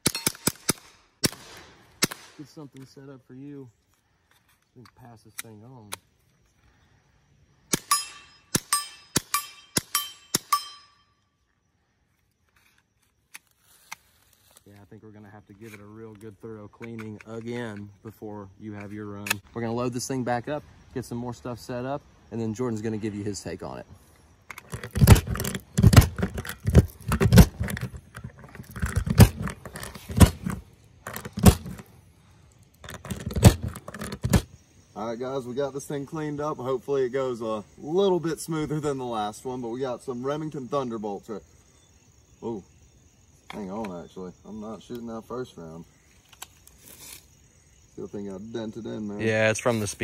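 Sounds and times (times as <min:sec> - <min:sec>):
suppressed pistol shots: 0:00.0 - 0:02.4
rounds clicking into a magazine: 0:04.3 - 0:06.1, 0:12.4 - 0:14.7, 0:15.6 - 0:17.9, 0:18.8 - 0:19.4, 0:46.2 - 0:46.8
steel target ringing ping: 0:07.8 - 0:11.2.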